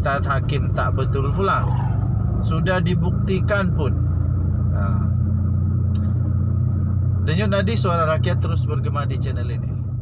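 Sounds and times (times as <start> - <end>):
car rumble inside cabin: 0.0 - 10.0.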